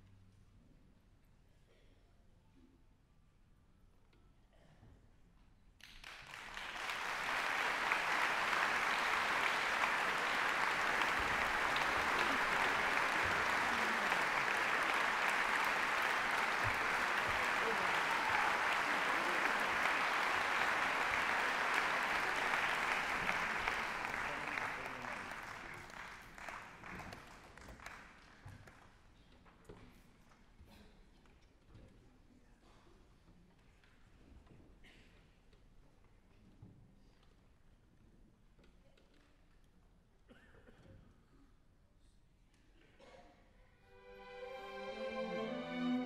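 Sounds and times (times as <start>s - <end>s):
audience applauding: 5.8s - 28.8s.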